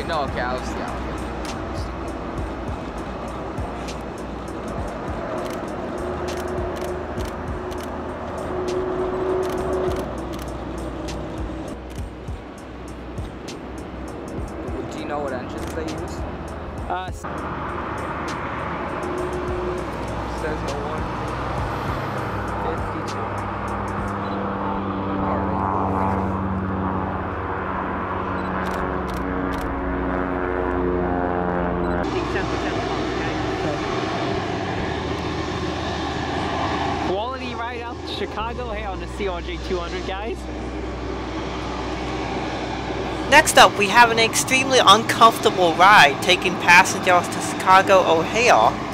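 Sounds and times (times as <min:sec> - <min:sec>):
jet engines running: 0:00.0 - 0:48.9.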